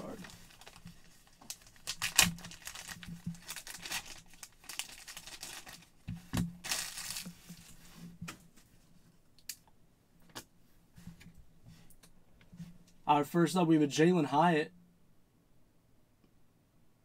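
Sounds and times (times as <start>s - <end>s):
plastic bag rustling: 0.0s - 8.2s.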